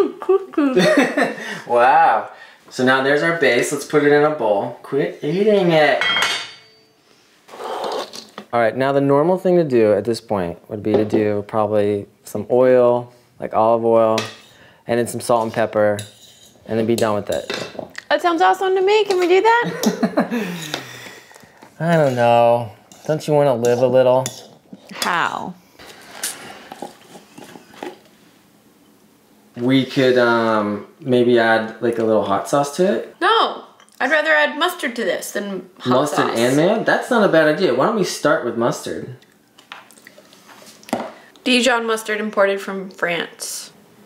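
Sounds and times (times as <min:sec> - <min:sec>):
cutlery clinking on dishware: 0:06.0 - 0:06.9
fork scraping cutting board: 0:07.5 - 0:08.4.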